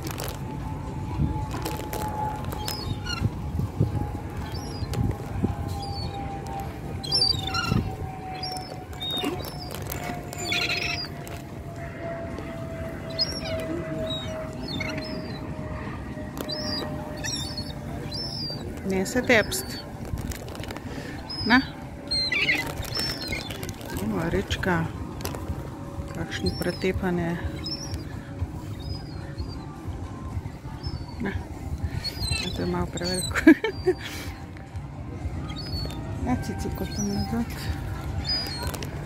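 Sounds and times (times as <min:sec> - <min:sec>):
low outdoor rumble: 0:00.0 - 0:39.0
high bird chirps: 0:02.5 - 0:05.1, 0:05.7 - 0:11.4, 0:13.0 - 0:19.9, 0:21.0 - 0:24.6, 0:27.4 - 0:31.3, 0:31.9 - 0:34.1, 0:35.4 - 0:36.0, 0:36.7 - 0:39.0.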